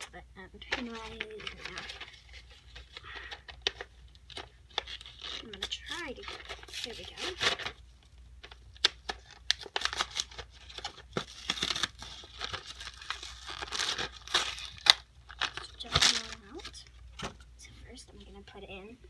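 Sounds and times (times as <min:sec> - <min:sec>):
plastic packet crinkling: 0:00.0 - 0:17.0.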